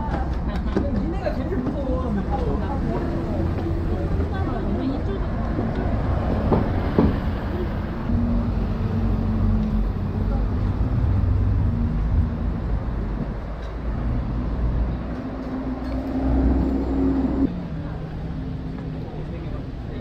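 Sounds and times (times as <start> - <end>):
people's voices: 0.0 - 13.9
road traffic rumble: 0.0 - 20.0.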